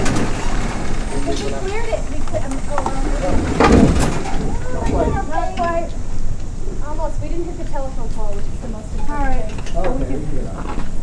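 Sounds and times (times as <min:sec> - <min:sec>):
indistinct voices talking: 0:00.0 - 0:10.8
steady low rumble: 0:00.0 - 0:11.0.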